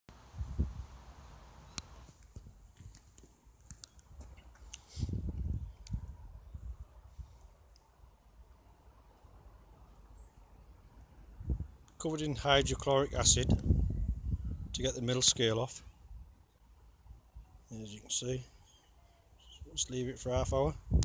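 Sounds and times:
small clicks: 1.7 - 4.9.

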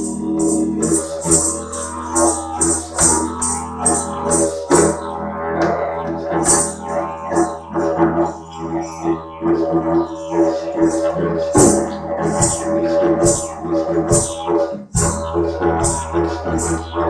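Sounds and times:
didgeridoo drone: 0.0 - 17.0.

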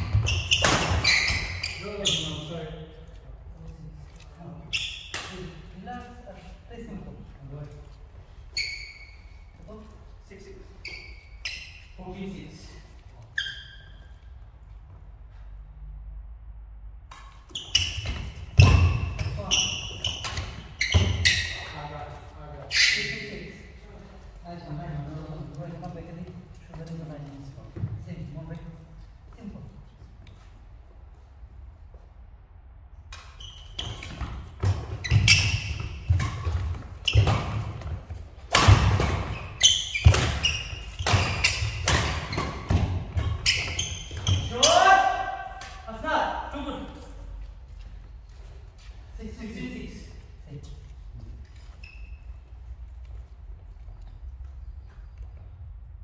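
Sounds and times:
rackets hitting shuttlecock: 0.0 - 1.6, 33.1 - 45.9
sports shoes squeaking on floor: 0.0 - 3.2, 4.2 - 5.8, 7.6 - 15.2, 17.2 - 29.5, 33.1 - 49.2, 50.2 - 55.8
footsteps on court floor: 46.7 - 49.2, 50.1 - 56.0.

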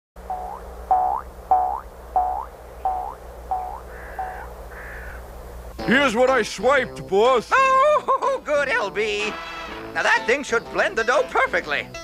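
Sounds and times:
low hum: 0.2 - 5.9
cartoon tones bending upward: 0.3 - 4.5.

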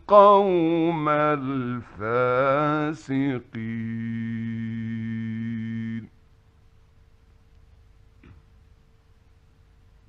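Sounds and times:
man reciting in long steady note: 0.0 - 6.1.

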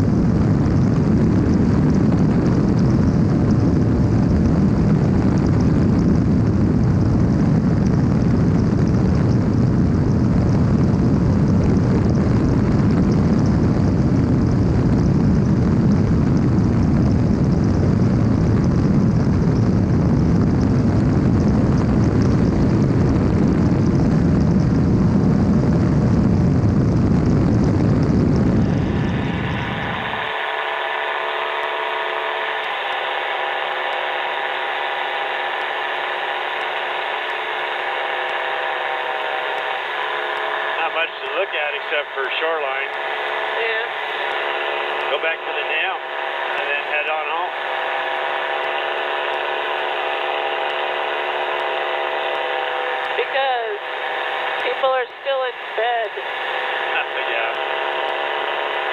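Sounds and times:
wind rushing: 0.0 - 31.2
engine and propeller noise: 0.0 - 58.9
engine drone over headset intercom: 0.0 - 58.9.

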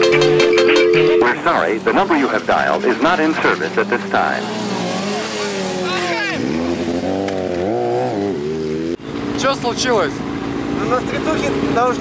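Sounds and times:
motorcycle engine revving: 1.3 - 12.0.

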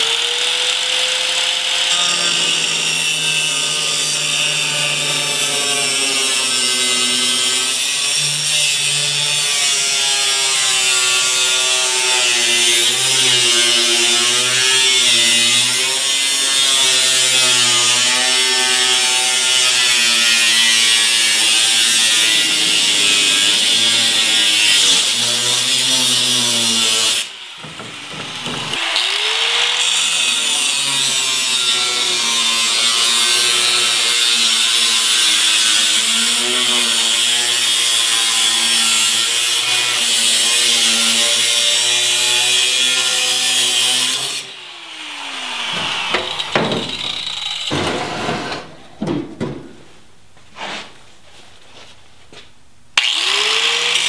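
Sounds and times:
angle grinder cutting steel: 0.0 - 49.0, 53.0 - 54.0.

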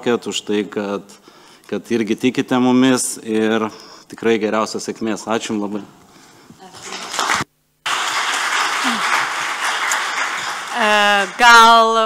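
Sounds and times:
audience applauding: 6.7 - 12.0.

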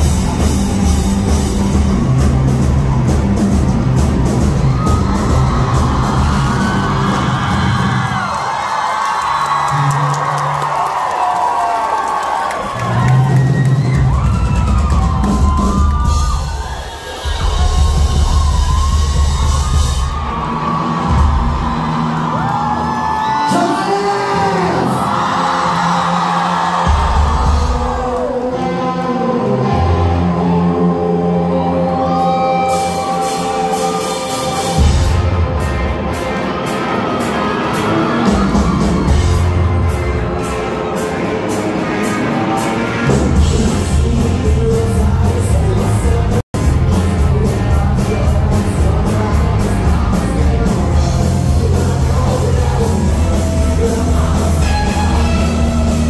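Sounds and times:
crowd cheering and screaming: 0.0 - 56.0
live rock band: 0.0 - 56.0.

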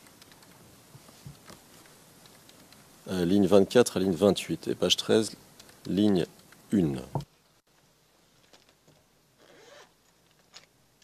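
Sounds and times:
faint clicks: 0.0 - 0.6, 1.3 - 2.9, 5.6 - 6.7
soft rustle: 0.0 - 4.4.

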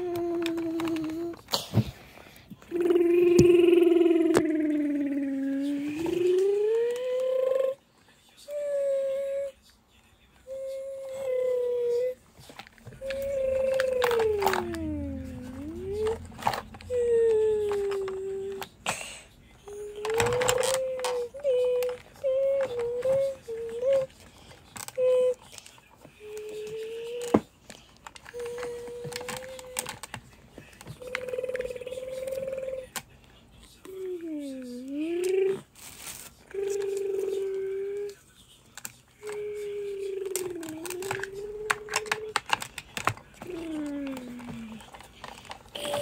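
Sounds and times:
child humming engine drone: 2.7 - 7.8, 8.5 - 9.6, 13.0 - 18.7, 19.7 - 24.1, 26.2 - 27.4, 31.0 - 32.9, 34.0 - 35.7, 36.5 - 38.2, 39.2 - 42.3, 43.4 - 44.8, 45.8 - 46.0
child making truck noises: 13.0 - 16.2
plastic toy clicks: 40.2 - 46.0.

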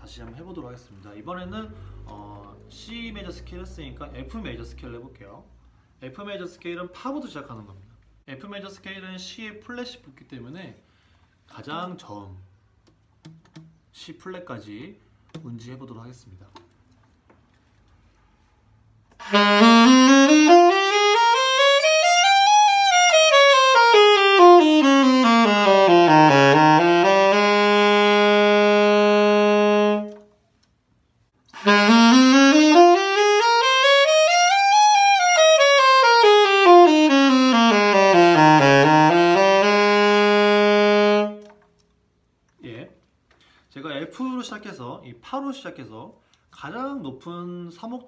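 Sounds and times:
alto saxophone playing a scale: 19.2 - 30.3, 31.5 - 41.6.

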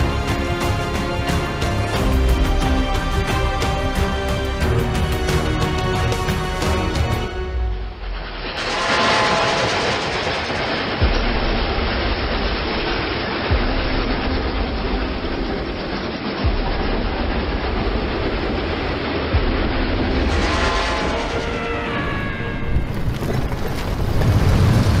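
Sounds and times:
steam train clattering on rails: 8.2 - 25.0.

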